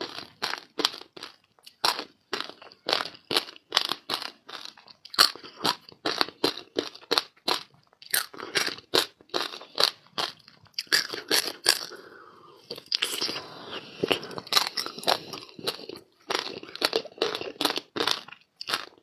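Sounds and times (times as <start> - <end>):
ice crunching and chewing: 0.0 - 19.0.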